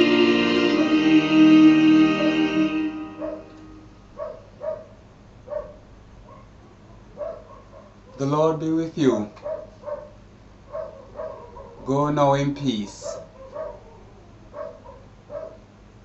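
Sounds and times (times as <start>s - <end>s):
choir singing a hymn: 0.0s - 3.9s
dog yipping and whimpering: 7.2s - 7.9s, 9.4s - 11.8s, 13.1s - 15.6s.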